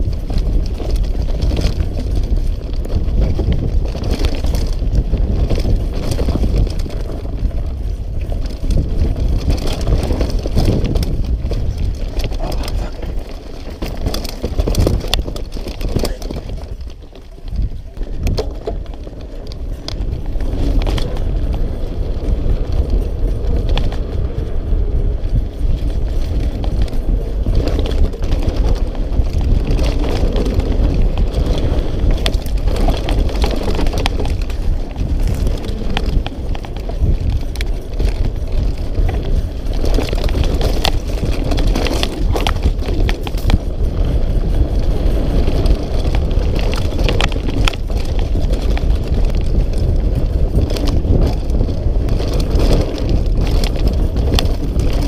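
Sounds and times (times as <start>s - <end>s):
bike clicks and rattles: 0.0s - 55.0s
tyres rolling over dirt: 0.0s - 55.0s
wind on microphone: 0.0s - 55.0s.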